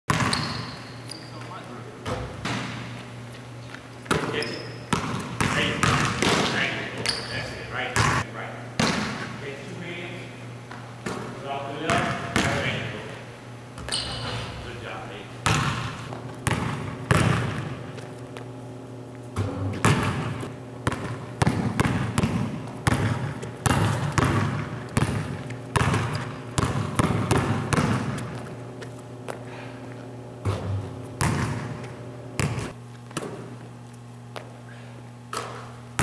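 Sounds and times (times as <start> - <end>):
basketball bouncing on hardwood: 0.1 - 0.7, 4.9 - 6.5, 15.4 - 18.1, 19.4 - 28.5, 30.4 - 33.5
sneaker squeaks: 0.1 - 8.2, 13.8 - 14.7, 19.3 - 29.6
steady low hum: 0.1 - 36.0.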